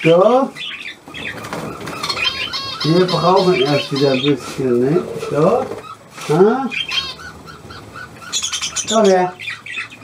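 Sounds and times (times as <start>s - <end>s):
budgerigar squawking chatter: 0.0s - 10.0s
budgerigar chirps: 0.6s - 4.6s, 6.7s - 10.0s.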